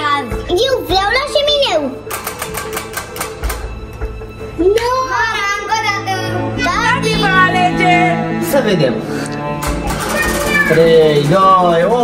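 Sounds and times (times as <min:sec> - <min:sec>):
prize wheel flapper clicking: 0:09.6 - 0:10.9.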